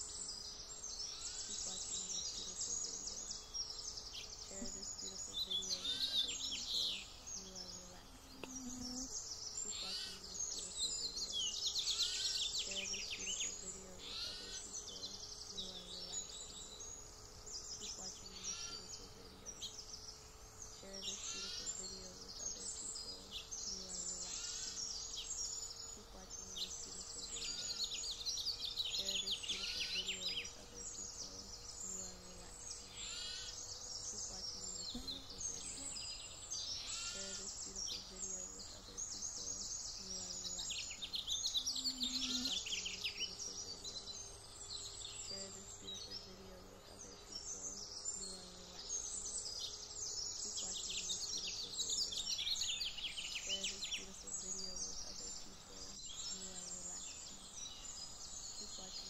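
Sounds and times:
birds chirping and trilling: 0:00.0 - 0:59.0
faint ambient noise: 0:00.0 - 0:59.0.

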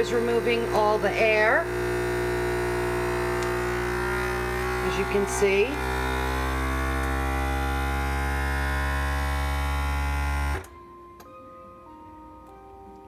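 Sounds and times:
vacuum sealer pump humming: 0:00.0 - 0:10.7.

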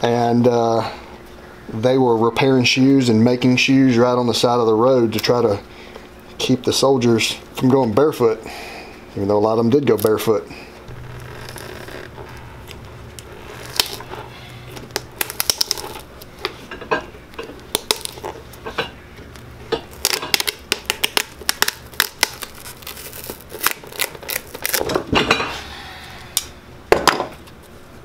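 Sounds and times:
leather sole prying cracks: 0:10.9 - 0:14.1, 0:14.7 - 0:16.1, 0:17.7 - 0:18.4, 0:20.0 - 0:24.9.

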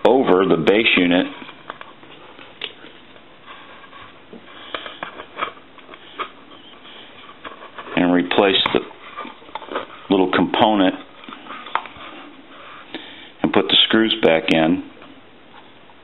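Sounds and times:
person speaking: 0:00.0 - 0:01.5, 0:07.8 - 0:11.2, 0:13.4 - 0:15.0.

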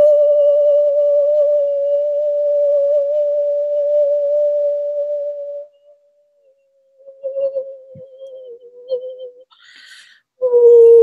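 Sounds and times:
wavering tone: 0:00.0 - 0:09.6.

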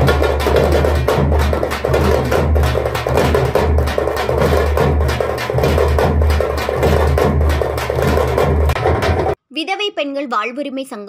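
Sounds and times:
frame drums beaten with sticks: 0:00.0 - 0:09.4.

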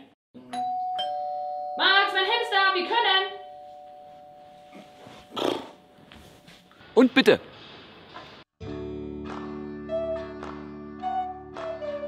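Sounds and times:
two-tone doorbell chime: 0:00.5 - 0:02.5, 0:03.2 - 0:05.3.

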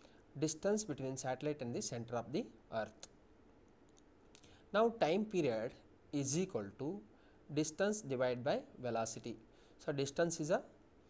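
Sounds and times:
man speaking: 0:00.4 - 0:03.1, 0:04.7 - 0:10.7
faint clicks: 0:03.0 - 0:04.6.

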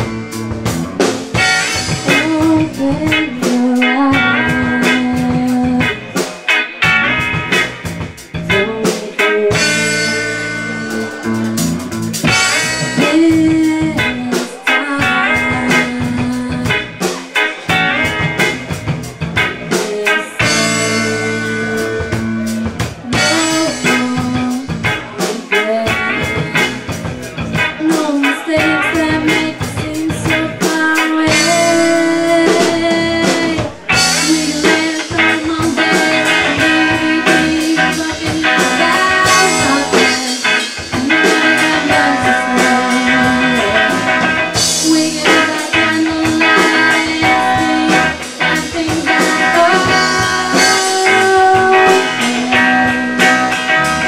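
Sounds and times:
drum kit: 0:00.0 - 0:54.0
electric guitars: 0:00.0 - 0:54.0
woman singing lead: 0:01.0 - 0:11.6, 0:12.2 - 0:54.0.

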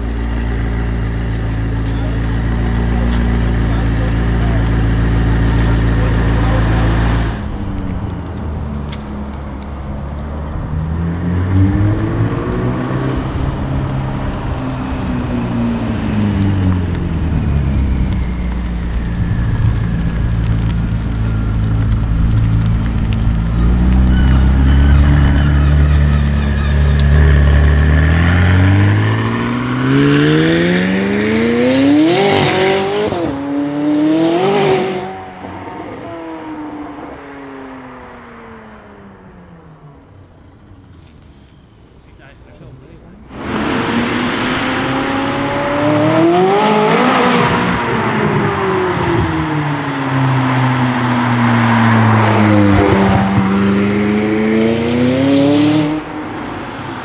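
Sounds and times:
exhaust pops crackling: 0:00.0 - 0:33.4, 0:51.2 - 0:55.1
car engine accelerating hard: 0:00.0 - 0:39.6, 0:43.2 - 0:57.0.

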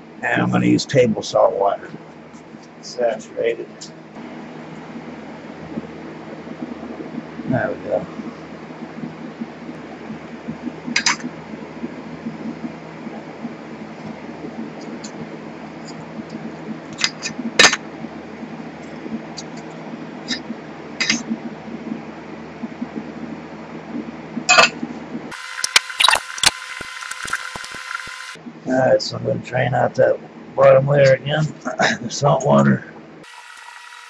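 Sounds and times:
steady background hum: 0:00.0 - 0:34.0.

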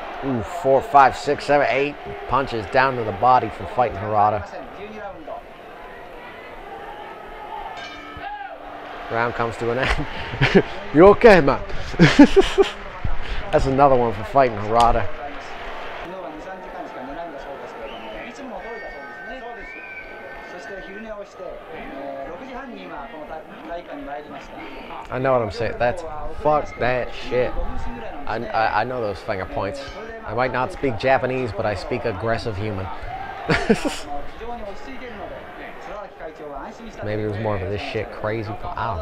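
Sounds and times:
commentary: 0:00.0 - 0:07.3, 0:08.1 - 0:39.0
man talking: 0:00.2 - 0:05.4, 0:09.1 - 0:15.5, 0:20.5 - 0:39.0.

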